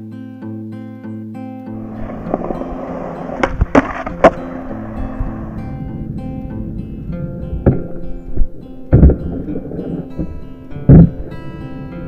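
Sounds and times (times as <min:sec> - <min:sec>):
acoustic guitar music: 0:00.0 - 0:12.0
skateboard wheels rolling on concrete: 0:01.7 - 0:12.0
skateboard clacks: 0:01.8 - 0:05.6.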